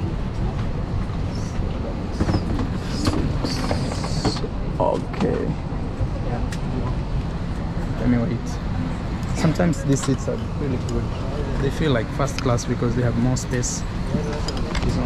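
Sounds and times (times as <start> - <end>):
faint passenger voices: 0.0 - 15.0.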